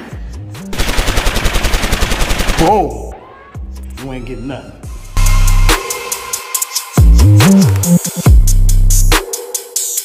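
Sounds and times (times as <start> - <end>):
machine-gun fire: 0.7 - 2.8.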